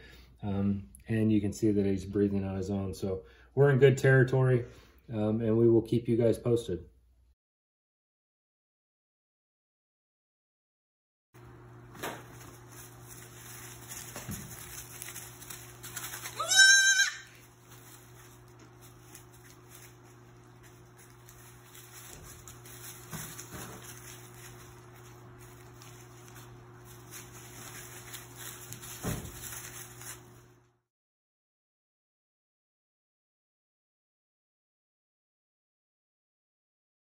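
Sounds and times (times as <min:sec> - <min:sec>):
animals rustling in wood shavings: 0:11.4 - 0:30.7
steady low hum: 0:11.4 - 0:30.8
lamb bleating: 0:16.2 - 0:17.4.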